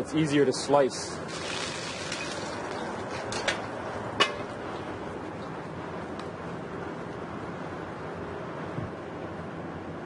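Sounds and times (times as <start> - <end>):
fish searing in hot oil: 1.3 - 2.6.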